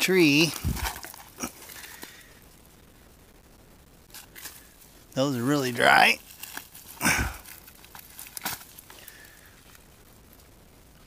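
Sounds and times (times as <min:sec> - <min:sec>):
dry fungus and twigs crackling: 0:00.0 - 0:02.6, 0:04.0 - 0:10.6
loud rustle: 0:00.4 - 0:02.3.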